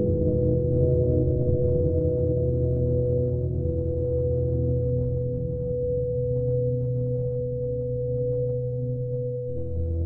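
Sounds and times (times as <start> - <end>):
ambient music with droning tones: 0.0 - 10.0.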